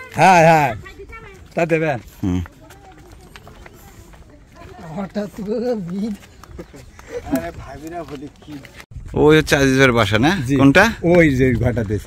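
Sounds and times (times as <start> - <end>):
footsteps on sandy dirt path: 0.0 - 12.0.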